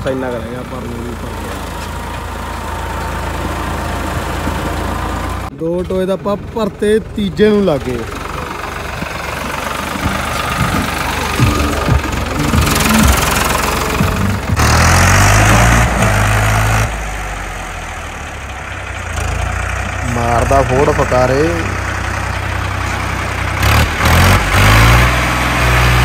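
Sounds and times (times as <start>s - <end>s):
diesel tractor engine running: 0.0s - 26.0s.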